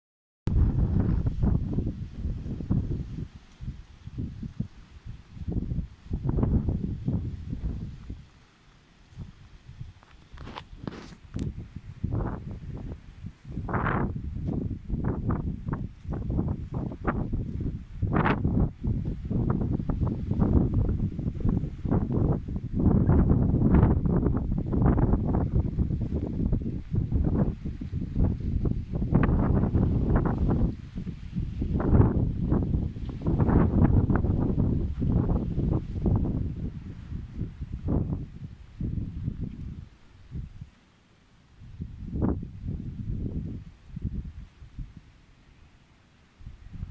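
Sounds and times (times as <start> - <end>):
wind buffeting microphone: 0.5 - 40.7, 41.6 - 45.2, 46.4 - 46.9.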